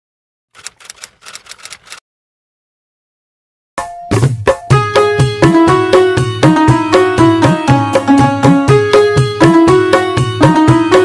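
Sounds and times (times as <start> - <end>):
typewriter key clacks: 0.6 - 2.0.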